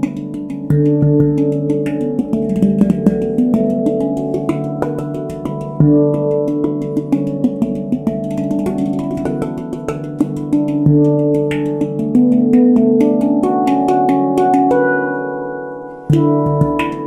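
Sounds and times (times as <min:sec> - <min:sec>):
deep bass handpan note: 0:00.0 - 0:15.0, 0:16.1 - 0:17.0
handpan played with fingertips: 0:00.0 - 0:17.0.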